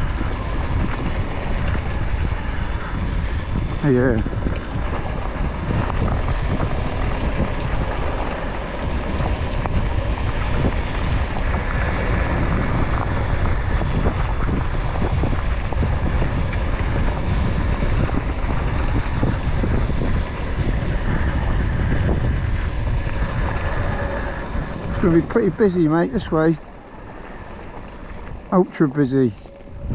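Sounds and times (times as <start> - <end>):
tyres rolling over gravel: 0.0 - 29.9
wind buffeting microphone: 0.0 - 29.9.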